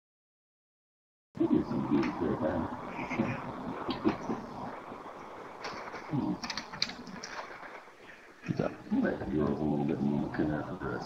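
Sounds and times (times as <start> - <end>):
muffled voices: 1.4 - 11.0.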